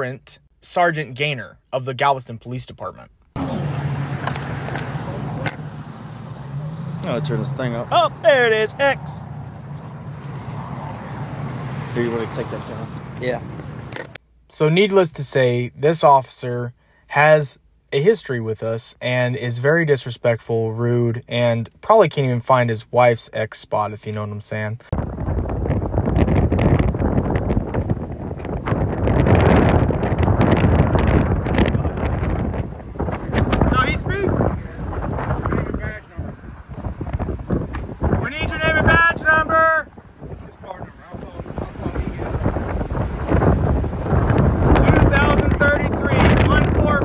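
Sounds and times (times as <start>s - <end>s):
street noise rumble: 3.4s - 14.2s, 25.0s - 47.0s
wind on microphone: 25.0s - 47.0s.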